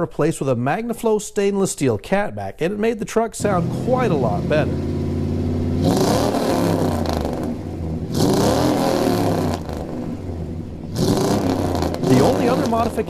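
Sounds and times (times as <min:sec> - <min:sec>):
pickup truck engine revving: 0:03.4 - 0:13.0.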